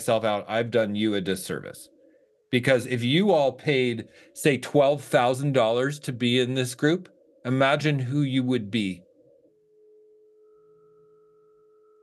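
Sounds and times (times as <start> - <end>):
faint steady hum of pitched tones: 0.0 - 12.0.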